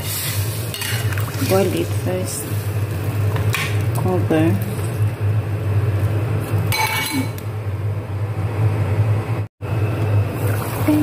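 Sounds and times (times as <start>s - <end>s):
metal pot lid clinking on wok: 6.7s - 7.4s.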